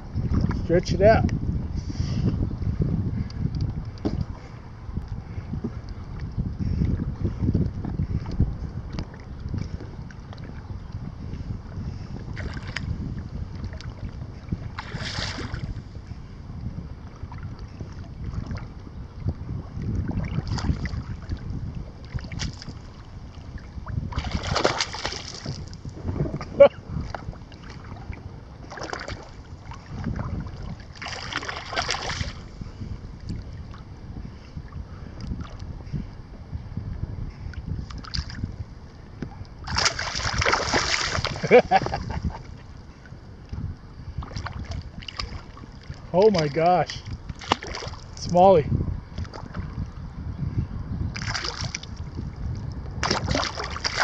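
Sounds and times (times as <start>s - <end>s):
water lapping and splashing: 0.0s - 1.2s, 3.2s - 36.0s, 37.4s - 38.5s, 39.2s - 50.0s, 51.1s - 54.0s
wind buffeting microphone: 0.0s - 54.0s.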